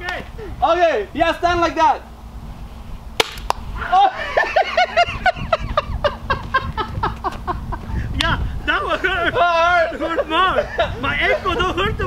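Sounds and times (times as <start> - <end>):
sharp air gun pops: 3.2 - 3.7
man crying out: 3.8 - 4.5.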